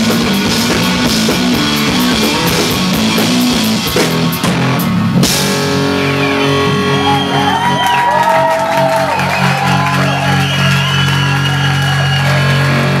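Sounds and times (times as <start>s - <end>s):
live band sustained note: 0.0s - 13.0s
audience cheering and whooping: 6.0s - 13.0s.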